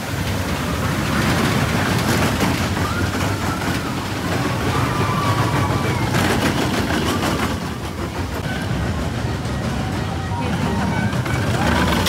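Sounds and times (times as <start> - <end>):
roller coaster clattering clicks: 0.0 - 12.0
roller coaster rumbling on track: 0.0 - 12.0.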